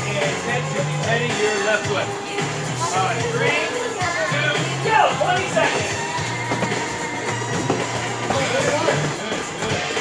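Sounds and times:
music with bass and guitar: 0.0 - 10.0.

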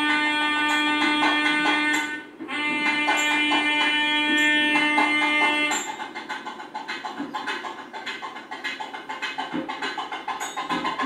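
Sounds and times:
instrumental background music: 0.0 - 11.0.

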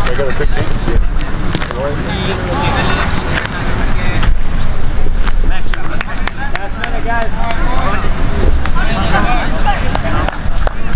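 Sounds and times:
voices calling out: 0.0 - 10.9
wind buffeting microphone: 0.0 - 10.9.

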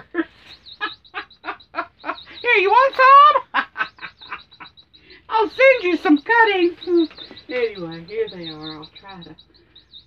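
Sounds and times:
woman laughing: 0.0 - 5.9
toy birds chirping: 0.0 - 10.0.

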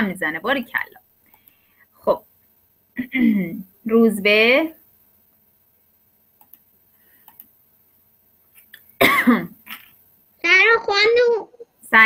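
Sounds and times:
child speaking: 10.4 - 11.8.

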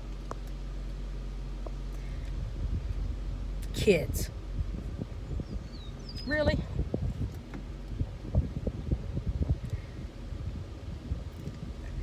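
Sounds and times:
steady hum: 0.0 - 12.0
vehicle cab rumble: 0.0 - 12.0.

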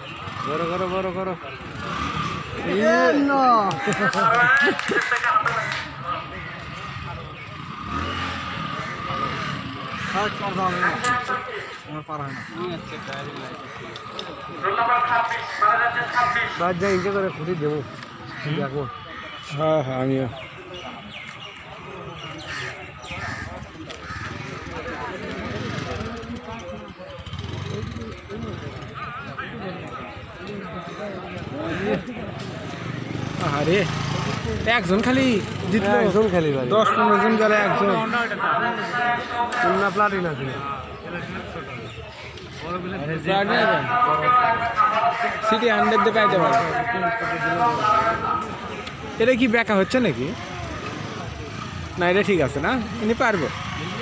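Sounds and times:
motorcycle engine at low speed: 0.0 - 2.6, 5.9 - 11.4, 23.0 - 30.3, 31.3 - 36.4, 48.2 - 54.0
chatter of voices: 0.0 - 54.0.

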